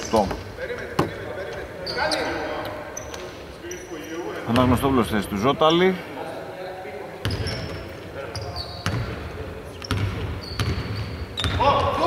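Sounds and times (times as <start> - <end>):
shoe squeaks: 1.7 - 4.3, 7.2 - 9.1, 9.7 - 11.8
basketball bouncing on court: 8.8 - 9.2, 9.8 - 12.0.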